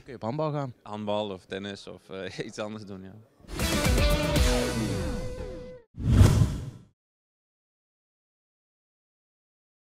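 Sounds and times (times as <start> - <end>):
whoosh with deep hit: 6.0 - 6.9.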